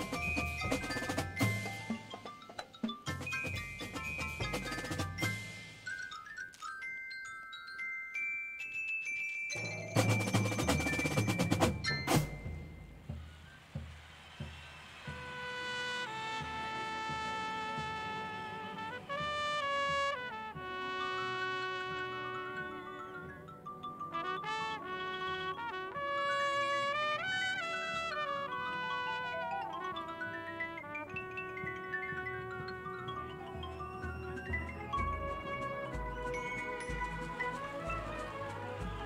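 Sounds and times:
sharp drum strokes: 9.7s - 18.4s
solo bugle playing slow melody: 15.2s - 23.0s, 24.1s - 31.0s, 35.1s - 39.0s
horns sustaining soft chords: 24.1s - 39.0s.

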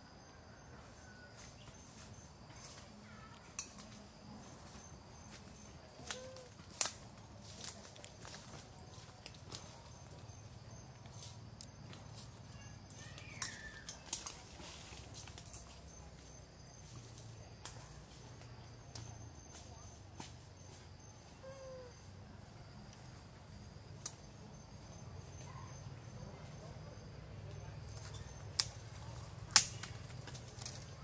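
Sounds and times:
forest ambience: 0.0s - 31.0s
insect hum: 0.0s - 31.0s
monkey coo call: 6.0s - 6.6s, 21.3s - 22.1s.

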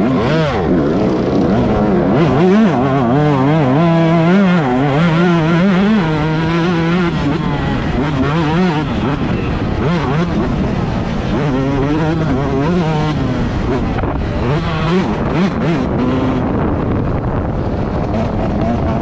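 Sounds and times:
two-stroke motocross engine revving: 0.0s - 19.0s.

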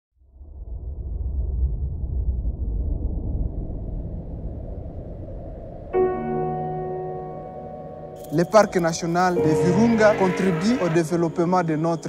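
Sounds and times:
low rumble: 0.2s - 6.7s
loud sustained chord hit: 6.2s - 12.0s.

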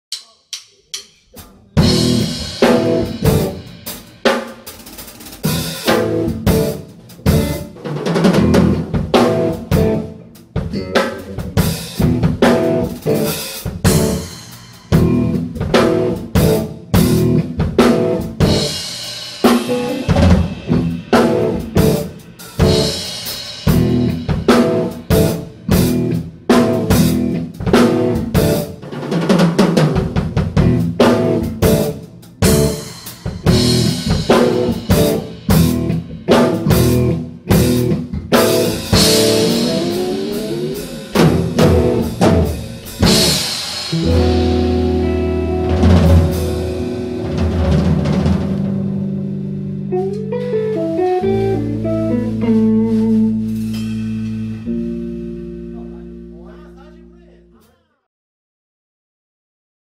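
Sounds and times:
rock trio playing stop-start: 1.8s - 57.7s.

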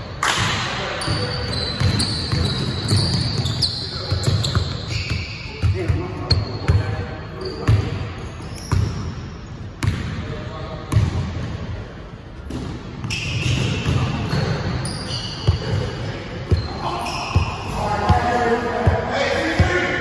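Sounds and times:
players' voices: 0.3s - 8.2s, 13.3s - 20.0s
sneaker squeaks: 1.0s - 10.0s, 12.5s - 18.3s.

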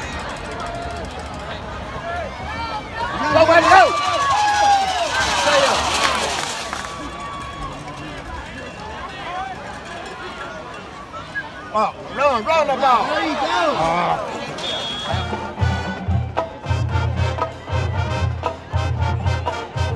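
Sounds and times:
spectators yelling and cheering: 0.0s - 19.9s.

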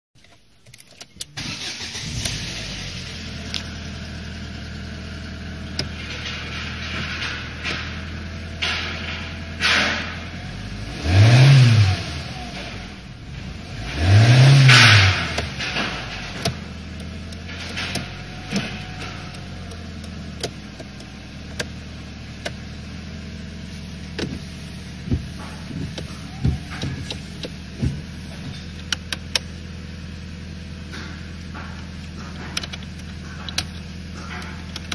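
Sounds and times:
car engine starting and idling: 0.2s - 34.9s
engine revving: 1.4s - 6.6s, 9.6s - 21.7s.

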